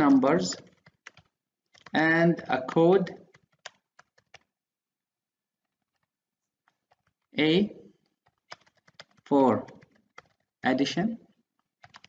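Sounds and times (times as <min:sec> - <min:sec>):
typing on a keyboard: 0:00.1 - 0:04.6, 0:05.6 - 0:07.4, 0:08.0 - 0:12.0.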